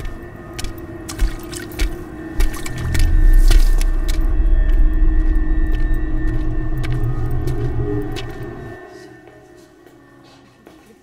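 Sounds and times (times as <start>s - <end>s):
loud low rumble: 2.7s - 8.7s.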